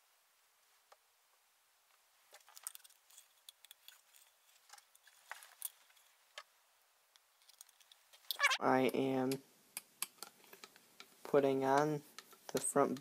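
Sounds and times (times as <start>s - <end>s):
clicks and rattles of plastic parts: 2.3s - 6.5s, 7.4s - 8.4s.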